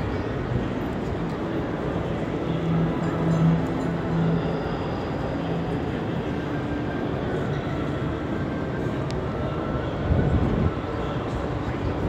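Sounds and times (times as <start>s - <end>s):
rumble of trains: 0.0s - 12.0s.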